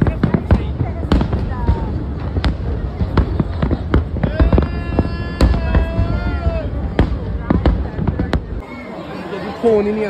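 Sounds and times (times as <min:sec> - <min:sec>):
fireworks bangs: 0:00.0 - 0:08.8
high-pitched whoop: 0:04.3 - 0:06.7.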